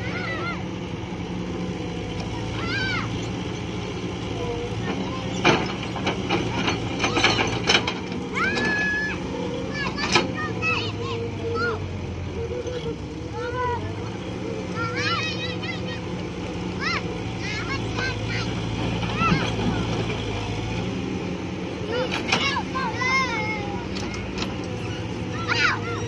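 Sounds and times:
children shouting: 0:00.0 - 0:01.2, 0:01.8 - 0:03.4, 0:04.1 - 0:26.0
excavator diesel engine running: 0:00.0 - 0:26.0.

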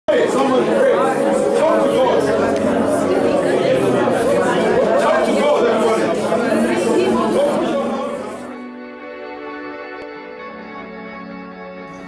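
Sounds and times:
group of people praying aloud: 0:00.1 - 0:08.4.

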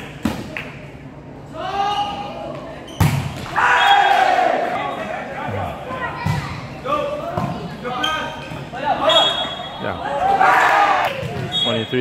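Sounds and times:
voices talking and calling out: 0:03.6 - 0:12.0.

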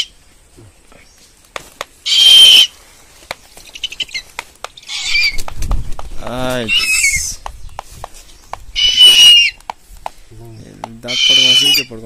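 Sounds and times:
wings rustling and flapping: 0:01.2 - 0:11.1
owl hissing: 0:02.0 - 0:05.4, 0:06.6 - 0:07.4, 0:08.2 - 0:10.3, 0:11.0 - 0:12.0.

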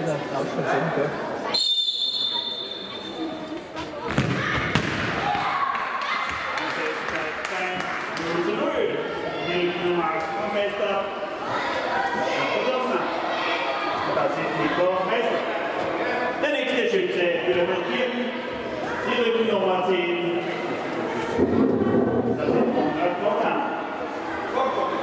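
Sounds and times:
children chattering: 0:00.0 - 0:04.7, 0:08.5 - 0:16.6, 0:17.3 - 0:25.0
ball kicked in a hall: 0:03.8 - 0:05.7.

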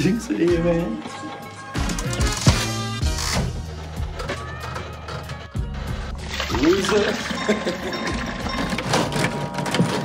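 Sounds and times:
music: 0:00.0 - 0:10.0
slot machine mechanical clunks: 0:07.2 - 0:10.0.

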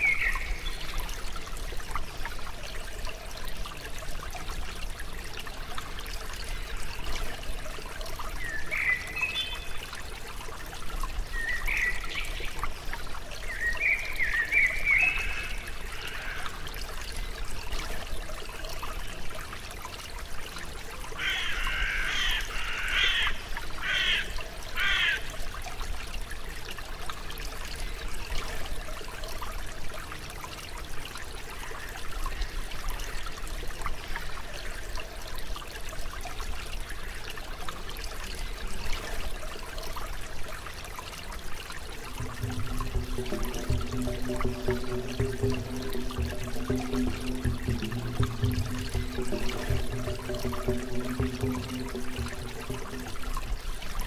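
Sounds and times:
water trickling: 0:00.0 - 0:54.0.

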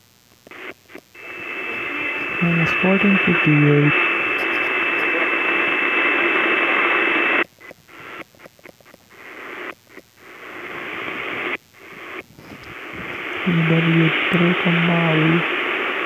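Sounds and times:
radio static hiss: 0:00.0 - 0:16.0.

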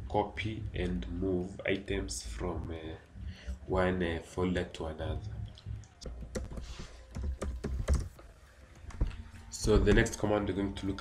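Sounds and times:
computer keyboard typing: 0:06.1 - 0:08.2.

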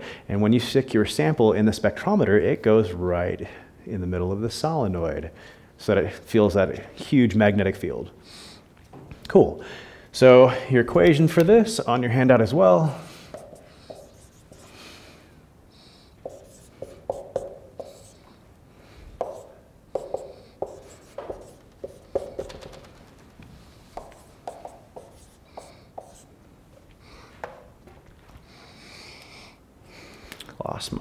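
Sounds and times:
marker squeaking on whiteboard: 0:13.3 - 0:14.7, 0:16.2 - 0:18.3, 0:19.2 - 0:23.3, 0:24.0 - 0:26.3.

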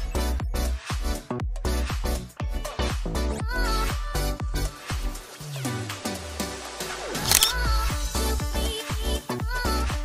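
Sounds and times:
camera shutter click: 0:07.2 - 0:07.6.

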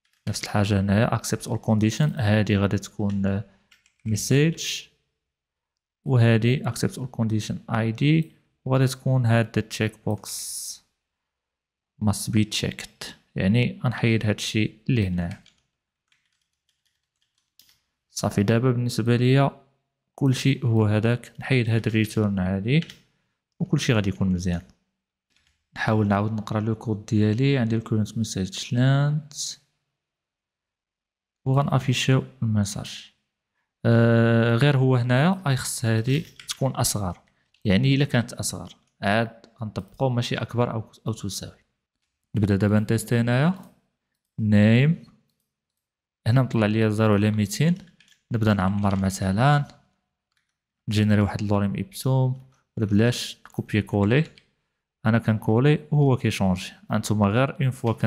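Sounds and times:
computer keyboard typing: 0:00.0 - 0:00.4, 0:03.0 - 0:04.3, 0:15.2 - 0:18.0, 0:22.8 - 0:23.0, 0:25.3 - 0:25.6, 0:36.1 - 0:37.6, 0:47.7 - 0:49.2.

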